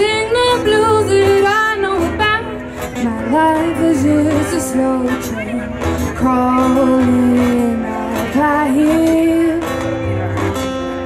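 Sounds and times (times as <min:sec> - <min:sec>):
woman singing: 0:00.0 - 0:09.8
acoustic guitar strumming: 0:00.0 - 0:11.0.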